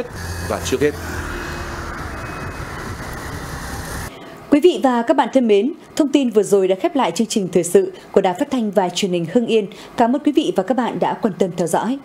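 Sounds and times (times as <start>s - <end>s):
motorbikes passing: 0.0s - 4.1s
heavy truck engine drone: 0.0s - 4.2s.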